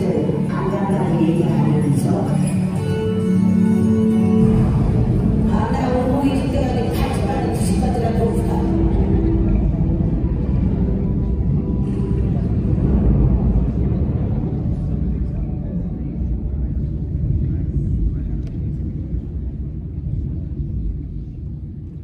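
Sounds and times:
faint murmur of voices: 0.0 - 22.0
low rumble in large hall: 0.0 - 22.0.

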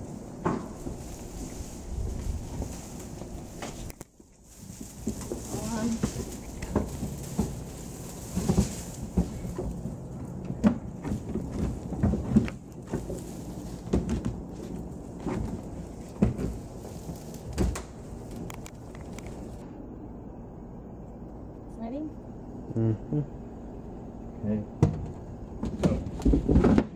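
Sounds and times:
knocks and rattles of poles: 0.0 - 19.6, 24.8 - 26.9.

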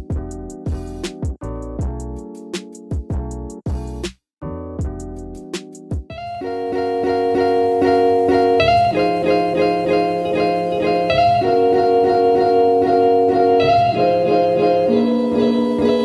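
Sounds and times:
mellow instrumental guitar music: 4.8 - 16.0.

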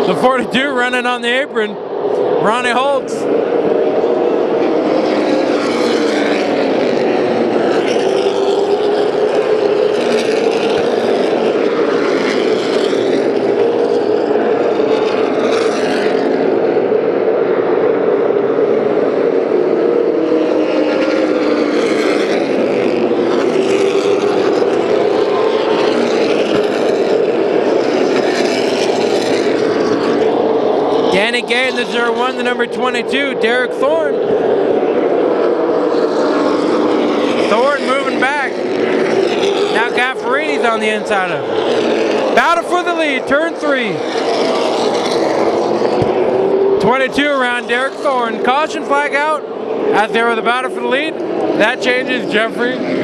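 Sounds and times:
stock car engines racing: 0.0 - 53.0.

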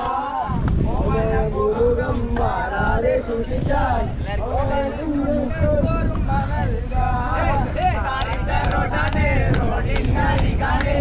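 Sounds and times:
people talking: 0.0 - 11.0
wind buffeting microphone: 0.0 - 11.0.

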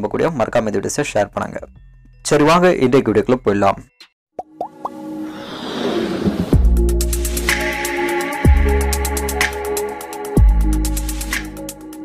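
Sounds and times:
quick rising pops: 4.6 - 7.6
whoosh: 5.2 - 7.9.

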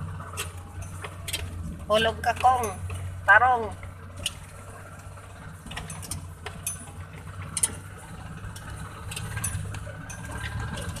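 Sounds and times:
vehicle body rattling: 0.0 - 11.0
vehicle engine rumbling: 0.0 - 11.0.

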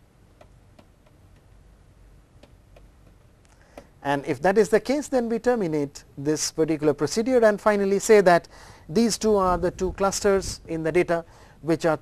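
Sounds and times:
low steady hum: 0.0 - 12.0
stylus tapping on tablet screen: 2.4 - 3.9.

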